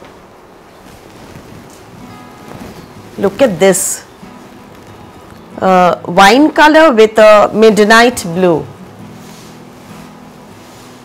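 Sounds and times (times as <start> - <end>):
faint music: 0.0 - 11.0
silk fabric rustling: 0.0 - 11.0.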